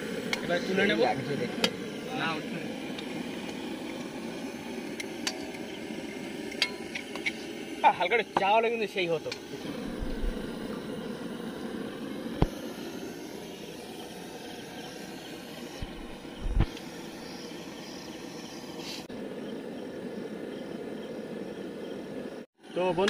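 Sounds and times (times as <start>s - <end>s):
oil sizzling in a wok: 0.0s - 19.2s.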